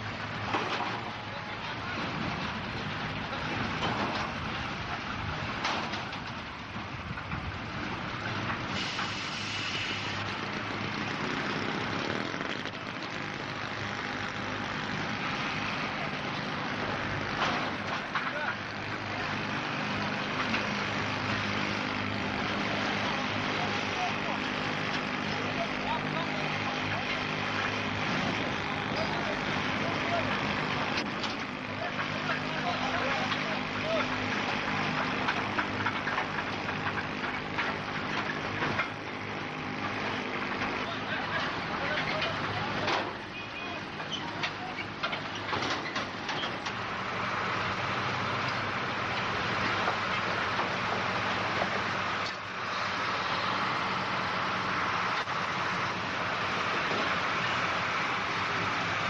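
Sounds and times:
vehicle engine running: 0:09.5 - 0:59.0.

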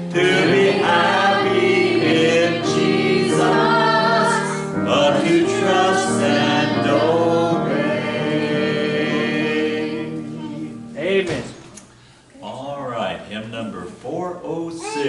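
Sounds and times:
congregation singing a hymn: 0:00.0 - 0:11.2.

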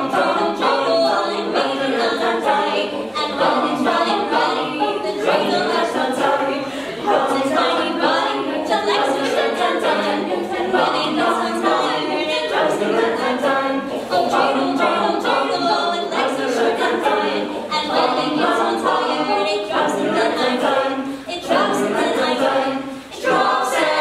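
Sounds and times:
a cappella group singing: 0:00.0 - 0:24.0.

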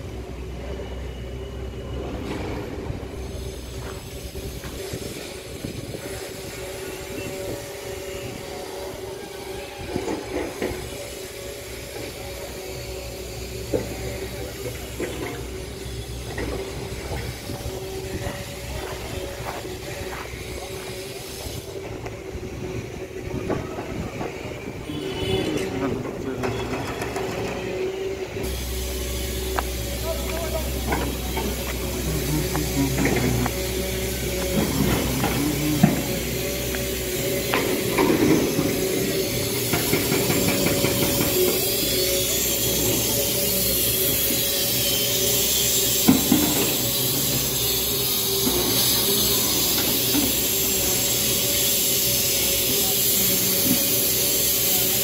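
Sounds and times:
excavator engine drone with whine: 0:00.0 - 0:55.0.

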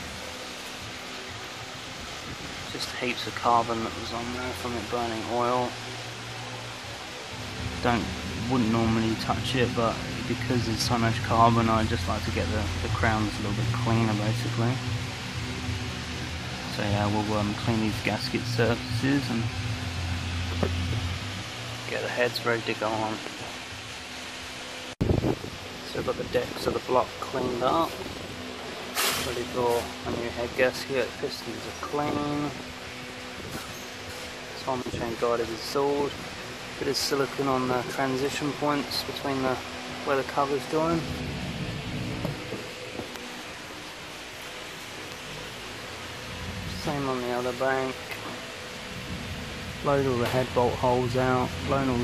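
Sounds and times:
low steady hum: 0:00.0 - 0:52.0
steady hiss: 0:00.0 - 0:52.0
man speaking: 0:07.7 - 0:14.9, 0:16.6 - 0:19.6, 0:21.8 - 0:23.3, 0:36.8 - 0:41.2, 0:46.7 - 0:48.0.

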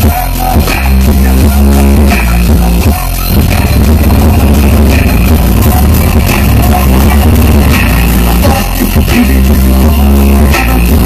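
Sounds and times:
loud electronic dance music: 0:00.0 - 0:11.0.

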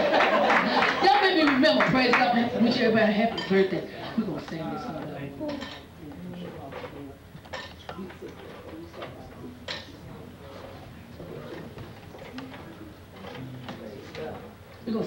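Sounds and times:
faint voices talking: 0:01.0 - 0:15.0.

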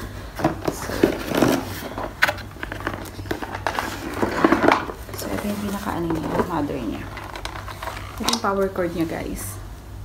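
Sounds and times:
cardboard packaging rustling: 0:00.0 - 0:08.6.

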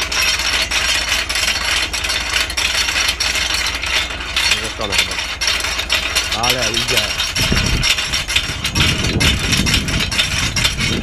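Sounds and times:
cultivator rattling through soil: 0:00.0 - 0:11.0.

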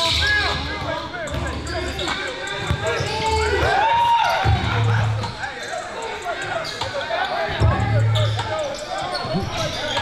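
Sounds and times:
sneakers squeaking: 0:00.0 - 0:10.0
voices in gym: 0:00.0 - 0:10.0.

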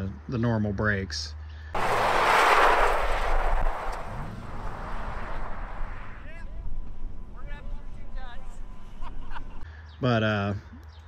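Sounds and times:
car sliding on dirt road: 0:01.8 - 0:06.3
car engine rumbling: 0:01.8 - 0:09.6.

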